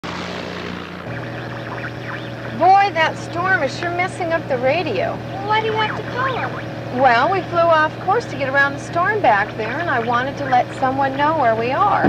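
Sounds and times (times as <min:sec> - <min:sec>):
propeller plane droning: 0:00.0 - 0:12.0.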